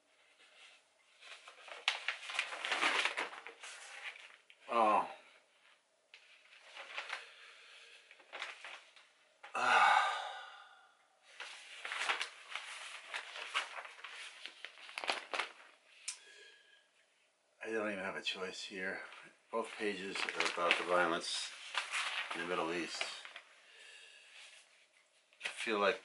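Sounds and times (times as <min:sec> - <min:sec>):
newspaper pages rustling: 0:00.1 - 0:04.7, 0:05.5 - 0:09.2, 0:11.3 - 0:16.6, 0:18.9 - 0:26.0
man sighing: 0:09.4 - 0:11.0.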